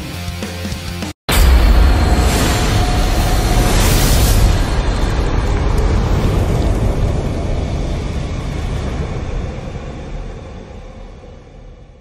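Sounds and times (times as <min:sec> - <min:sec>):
explosion rumble: 0:01.3 - 0:11.7.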